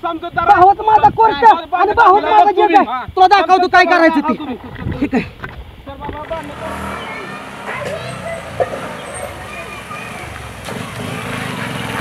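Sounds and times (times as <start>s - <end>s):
motorcycle engine running: 6.3s - 12.0s.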